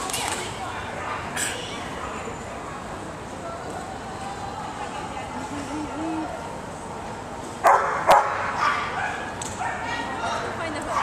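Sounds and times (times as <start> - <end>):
dog barking: 7.6 - 10.0.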